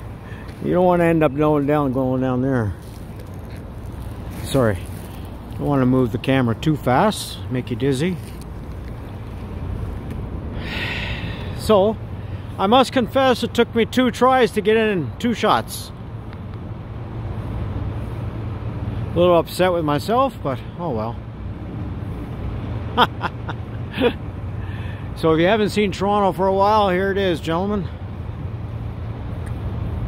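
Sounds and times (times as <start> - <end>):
truck engine idling: 0.0 - 30.0.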